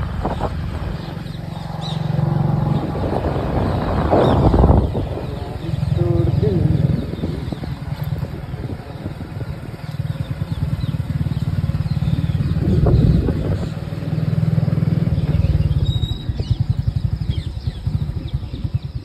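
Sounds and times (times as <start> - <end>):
vehicle engine noise: 0.0 - 19.0
wind rumbling on microphone: 0.0 - 19.0.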